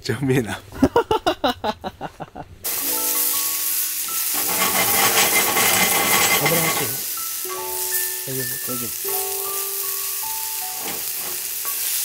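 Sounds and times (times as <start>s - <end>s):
mushrooms sizzling in a skillet: 2.7s - 12.0s
soft background music: 2.7s - 12.0s
wooden tongs stirring: 4.2s - 7.1s, 10.7s - 12.0s.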